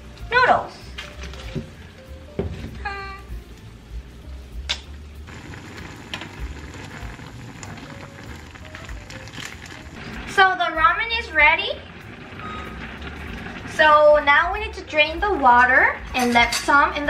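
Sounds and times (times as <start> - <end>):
water boiling in a pot: 3.4 - 17.0.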